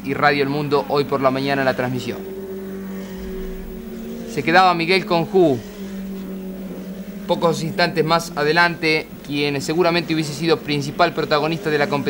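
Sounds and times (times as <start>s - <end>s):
race car engines running: 0.0s - 12.0s
low rumble: 1.0s - 10.1s.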